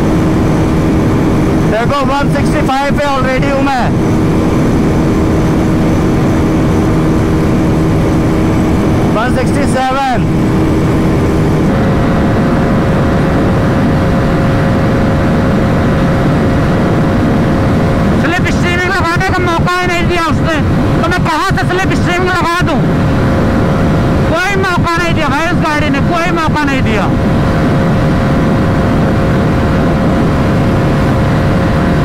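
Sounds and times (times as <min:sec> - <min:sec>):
motorcycle engine at high speed: 0:00.0 - 0:32.0
wind rush: 0:00.0 - 0:32.0.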